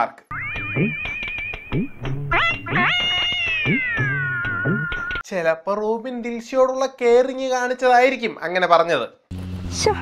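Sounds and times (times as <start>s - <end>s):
music with low beat: 0.4s - 5.2s.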